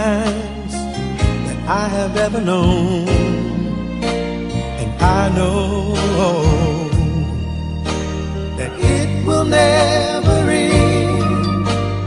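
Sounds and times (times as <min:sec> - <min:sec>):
bass: 0:00.0 - 0:12.0
sustained backing chords: 0:00.0 - 0:12.0
male vocal group singing: 0:08.6 - 0:12.0.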